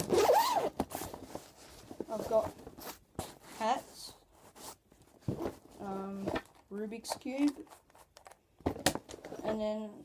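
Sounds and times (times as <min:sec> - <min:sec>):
zipper pulled open: 0:00.0 - 0:00.8.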